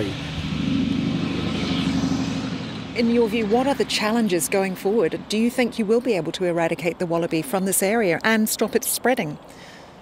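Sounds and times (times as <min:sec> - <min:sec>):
vehicle engine running: 0:00.0 - 0:05.8
road noise: 0:00.0 - 0:10.0.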